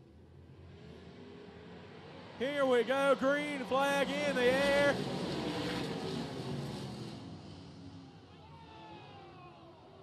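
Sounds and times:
race car engines at full throttle: 0.1 - 10.0.

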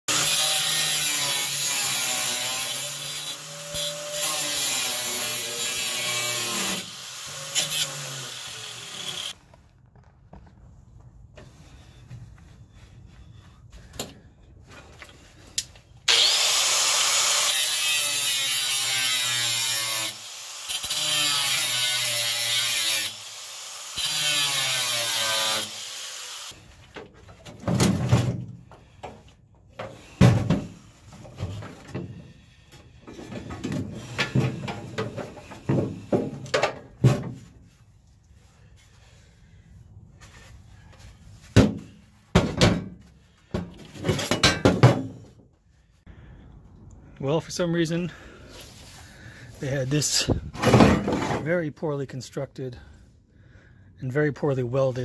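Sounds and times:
angle grinder on sheet steel: 0.1 - 9.4, 16.1 - 26.6.

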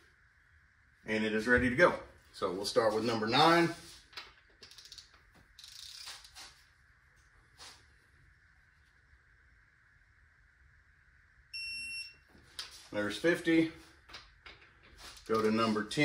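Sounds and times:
high-pitched torque wrench beep: 11.5 - 12.2.

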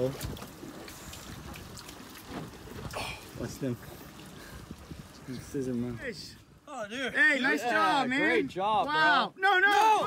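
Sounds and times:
water lapping around a boat: 0.0 - 6.8.

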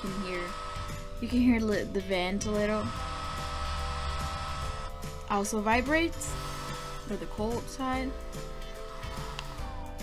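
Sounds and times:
cooling fan whirring: 0.0 - 10.0.

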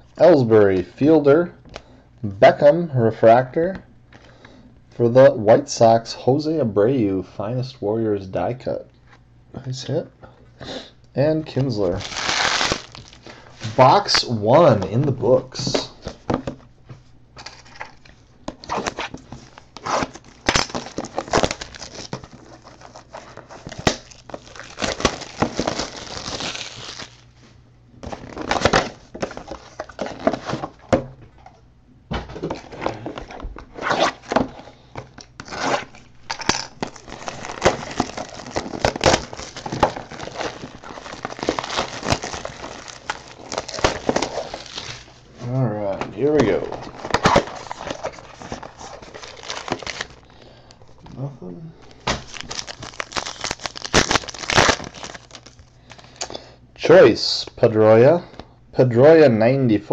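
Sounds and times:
plastic wrapping tearing and crinkling: 11.7 - 14.0, 17.4 - 27.3, 32.4 - 45.5, 46.1 - 50.3, 51.8 - 56.3.

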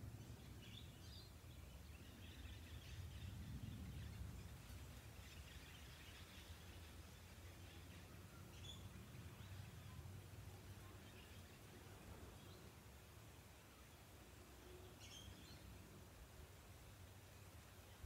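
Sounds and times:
faint low outdoor rumble: 0.0 - 18.0.

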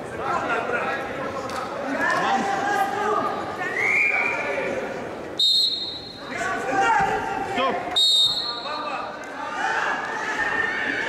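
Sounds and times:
referee's whistle blast: 5.4 - 6.3, 7.9 - 8.8.

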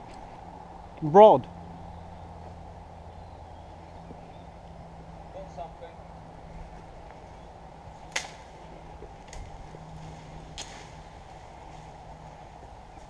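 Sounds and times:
low outdoor background hum: 0.0 - 13.0
sharp snaps: 8.1 - 8.5.

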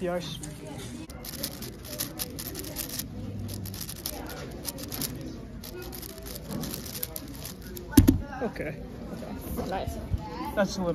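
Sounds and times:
plastic puzzle cube clicking: 1.1 - 7.9.

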